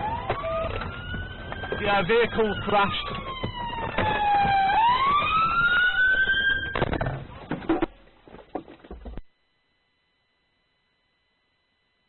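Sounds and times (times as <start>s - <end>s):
police siren wailing: 0.0s - 6.9s.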